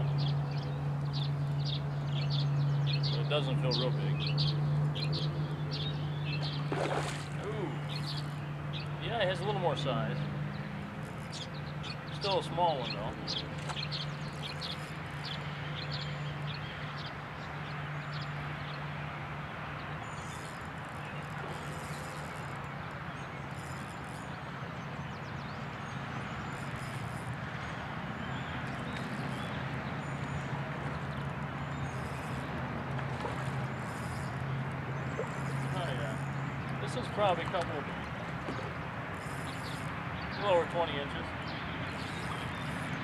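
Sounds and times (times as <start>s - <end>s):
birds chirping: 0.0s - 43.0s
outdoor noise: 0.0s - 43.0s
steady low hum: 0.0s - 43.0s.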